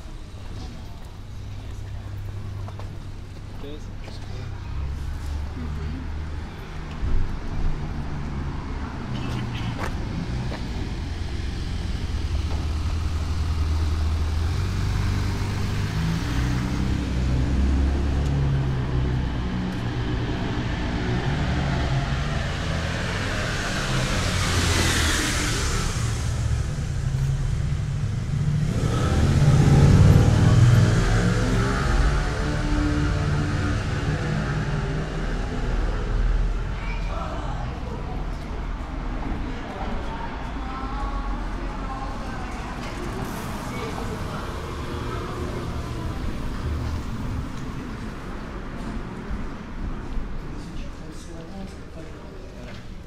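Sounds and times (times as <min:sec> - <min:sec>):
low traffic rumble: 0:00.0 - 0:53.0
vehicles passing by: 0:00.0 - 0:53.0
loud engine passing: 0:07.7 - 0:49.8.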